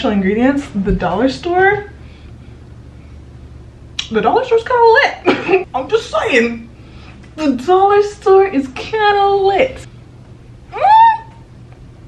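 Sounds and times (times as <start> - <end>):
woman humming: 10.7 - 11.4.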